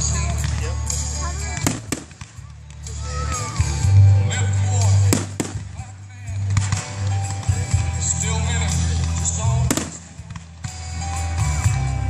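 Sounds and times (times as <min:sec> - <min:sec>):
fireworks bursting rumble: 0:00.0 - 0:11.8
voices or music: 0:00.0 - 0:12.0
sharp firework cracks: 0:01.5 - 0:03.7, 0:05.0 - 0:07.8, 0:08.9 - 0:10.8.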